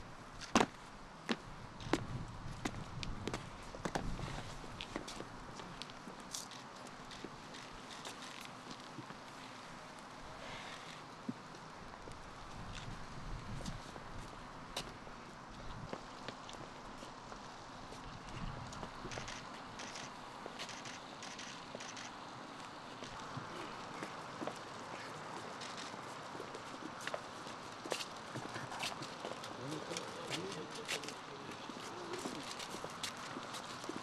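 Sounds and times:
footsteps on stone paving: 0:00.4 - 0:09.5, 0:22.6 - 0:34.0
outdoor hiss: 0:03.4 - 0:34.0.

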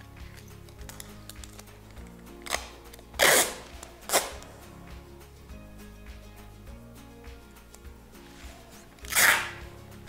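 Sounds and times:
background music: 0:00.0 - 0:10.0
packing tape ripping off roll: 0:00.3 - 0:04.5, 0:09.0 - 0:09.7.

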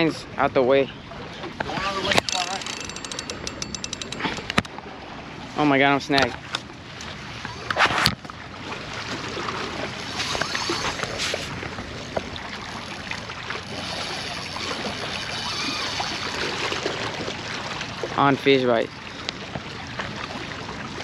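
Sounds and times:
waves and moving water: 0:00.0 - 0:21.0.

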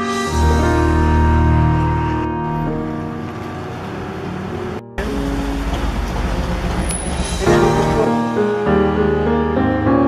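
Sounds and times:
street traffic noise: 0:01.0 - 0:08.1.

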